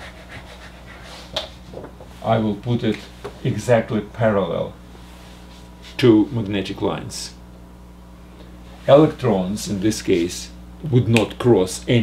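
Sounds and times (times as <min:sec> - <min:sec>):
hand rubbing whiteboard: 0:00.0 - 0:02.2
low steady hum: 0:00.0 - 0:12.0.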